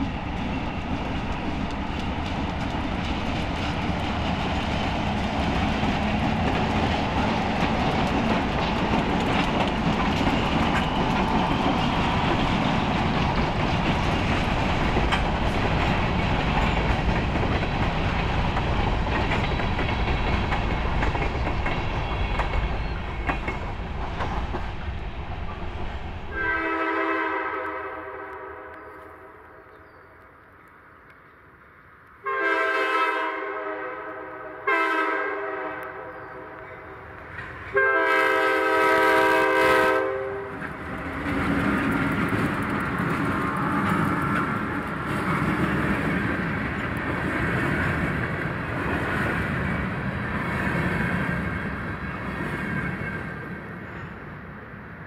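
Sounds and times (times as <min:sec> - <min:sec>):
freight cars rumbling on rails: 0:00.0 - 0:27.9, 0:35.5 - 0:55.0
diesel locomotives passing: 0:00.0 - 0:55.0
locomotive horn: 0:26.3 - 0:29.4, 0:32.2 - 0:36.6, 0:37.7 - 0:40.6.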